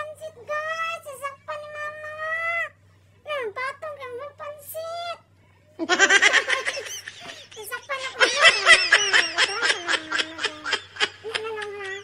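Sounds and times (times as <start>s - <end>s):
high-pitched laughter: 5.8s - 12.0s.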